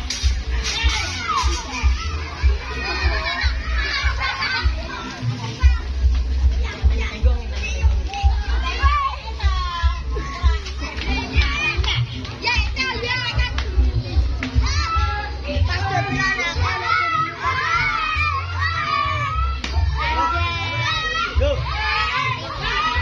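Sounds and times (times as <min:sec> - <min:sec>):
children chattering and shouting: 0:00.0 - 0:23.0
music with heavy bass: 0:00.0 - 0:23.0.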